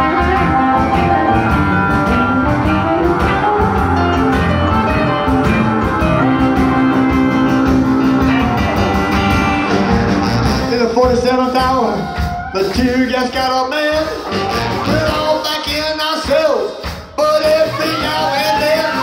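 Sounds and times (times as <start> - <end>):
electric guitar lead: 0.0 - 10.9, 14.2 - 15.5
stage piano: 0.0 - 19.0
steady drum beat: 0.0 - 19.0.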